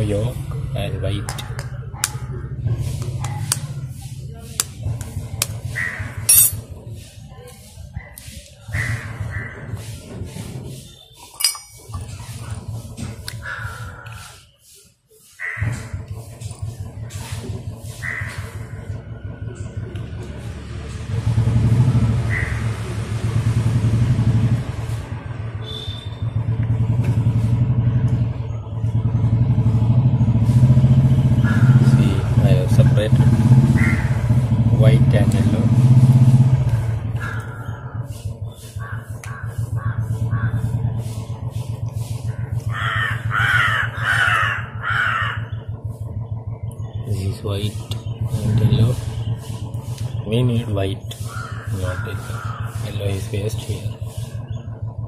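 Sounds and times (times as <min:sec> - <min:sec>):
engine low rumble: 0:00.0 - 0:14.3, 0:15.6 - 0:55.0.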